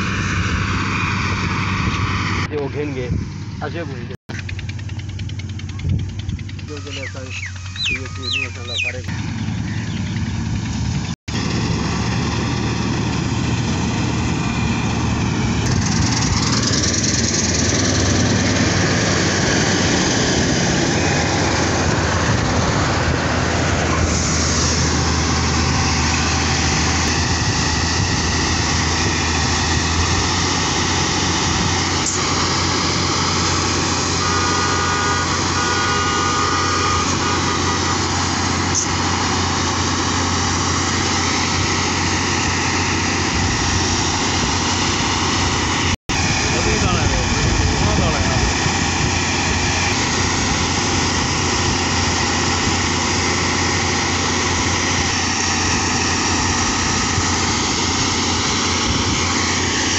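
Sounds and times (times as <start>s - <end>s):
combine harvester drone: 0.0s - 59.9s.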